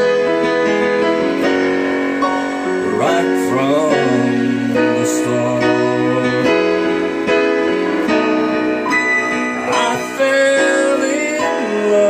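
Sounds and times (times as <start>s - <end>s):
digital piano playing country song: 0.0s - 12.0s
sliding bending melodic line: 0.0s - 12.0s.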